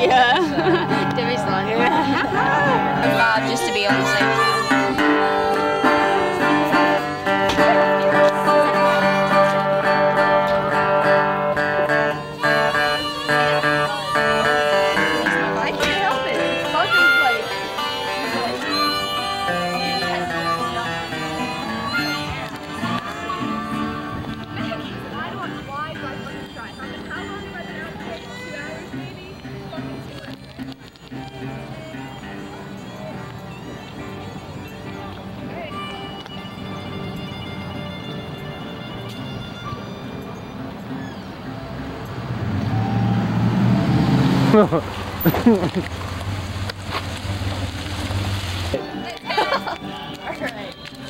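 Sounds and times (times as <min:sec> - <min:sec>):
indistinct chatter: 0:00.0 - 0:51.0
van engine driving past: 0:41.8 - 0:48.7.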